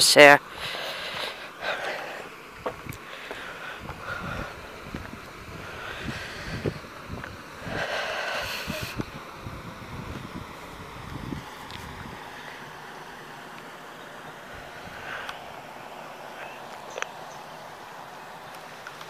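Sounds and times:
wind buffeting the microphone: 2.6 - 12.4.

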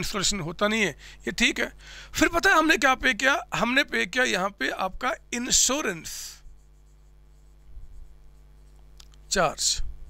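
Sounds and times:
marker pen on whiteboard: 4.9 - 9.8.

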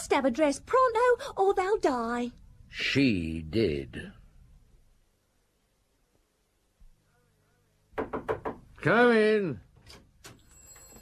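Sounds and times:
man speaking: 2.7 - 4.3, 8.8 - 9.6
knocks on a door: 7.9 - 8.7.

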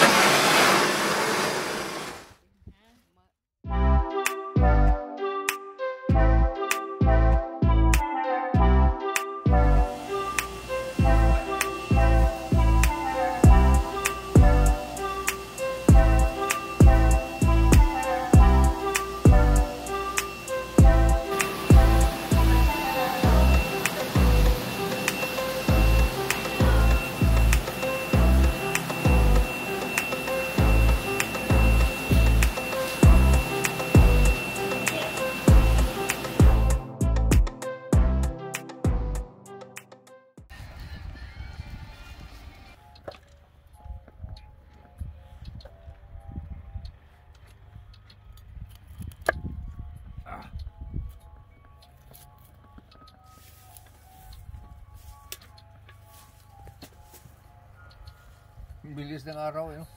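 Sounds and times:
synthesizer melody: 3.7 - 40.3, 49.5 - 59.9
electronic beat: 8.0 - 39.9.

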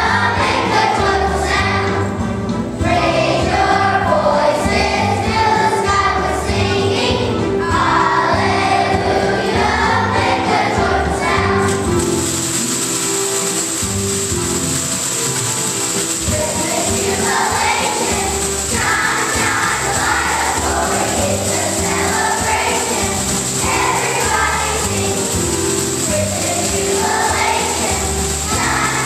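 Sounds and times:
children's choir singing: 0.0 - 14.3, 15.9 - 29.0
instrumental accompaniment: 0.0 - 29.0
high shimmer: 11.7 - 29.0.

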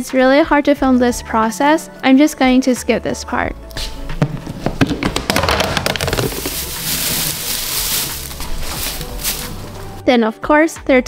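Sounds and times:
soft background music: 0.0 - 11.0
dry hay rustling: 6.0 - 10.0.

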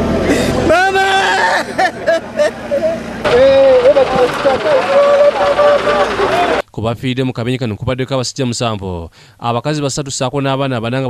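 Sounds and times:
man wailing in grief: 0.3 - 6.6.

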